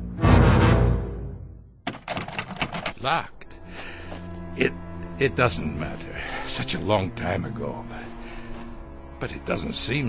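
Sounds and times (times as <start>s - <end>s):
door latch clicking and rattling: 1.8s - 3.0s.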